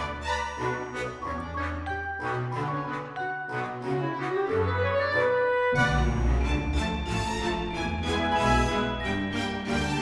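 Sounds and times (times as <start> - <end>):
instrumental background music: 0.0 - 10.0.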